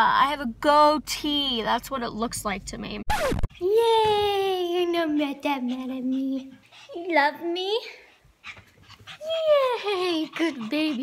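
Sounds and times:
dog panting and snuffling: 4.7s - 11.0s.

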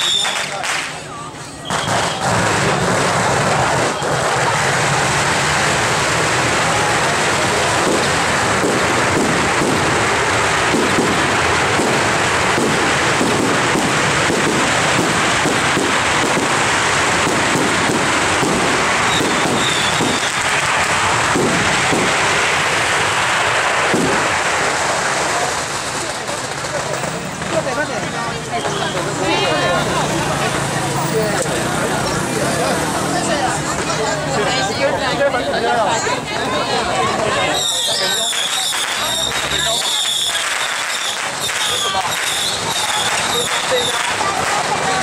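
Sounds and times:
firecrackers crackling: 0.0s - 45.0s.

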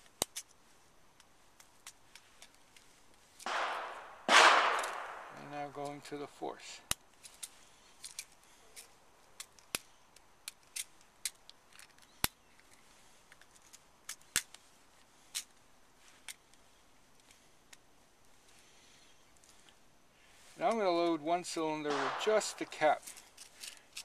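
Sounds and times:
small metal clicks and taps: 0.1s - 0.6s, 1.2s - 3.5s.

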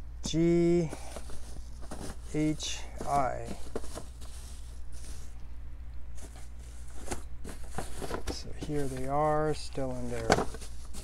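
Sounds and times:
plastic-wrapped boxes handled: 0.2s - 5.4s, 6.2s - 11.0s.

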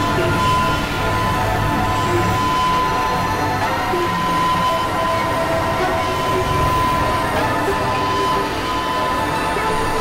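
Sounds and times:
synthesizer drone: 0.0s - 10.0s.

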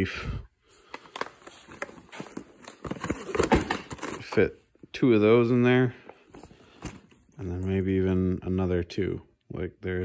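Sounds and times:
boxed meal rustling and clicking: 0.8s - 4.5s.

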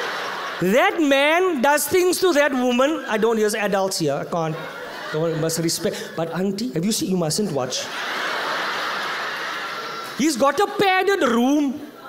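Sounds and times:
audience laughing: 0.0s - 2.0s, 2.7s - 10.8s.

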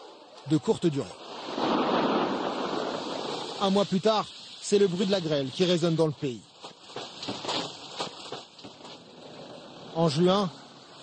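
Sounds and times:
hail pelting the ground: 1.2s - 9.0s.

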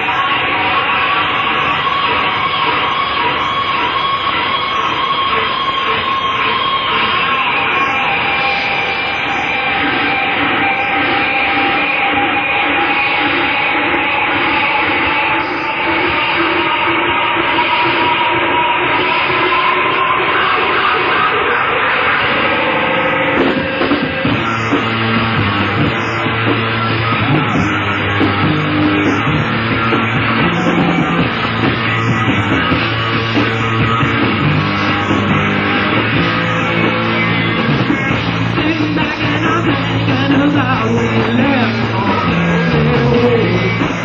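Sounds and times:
rock band drone: 0.0s - 44.0s
driving drum beat: 9.3s - 44.0s.

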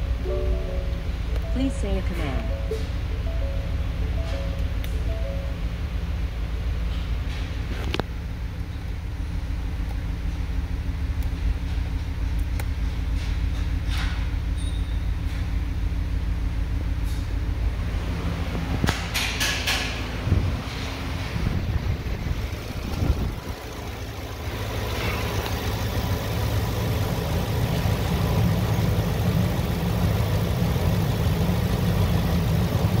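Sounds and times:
truck engine idling: 0.0s - 33.0s.

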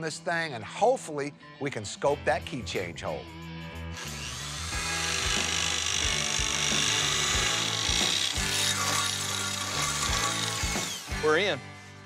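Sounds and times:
background music: 0.0s - 12.0s
electric drill boring through steel: 4.0s - 11.5s.

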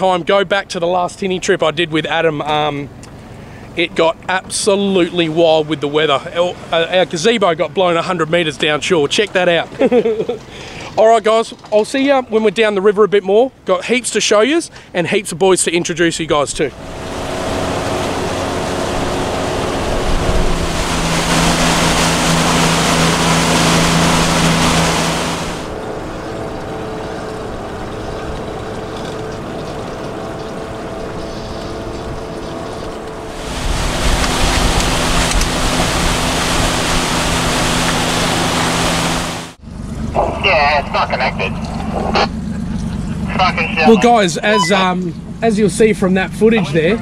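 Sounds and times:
man talking: 0.0s - 2.9s, 3.8s - 9.8s, 11.0s - 16.8s, 40.2s - 42.3s, 43.1s - 47.0s
outboard motor running: 2.2s - 11.0s, 15.8s - 47.0s
water rushing: 16.0s - 39.6s, 43.2s - 45.0s
wind noise: 16.7s - 26.4s, 30.9s - 39.5s.

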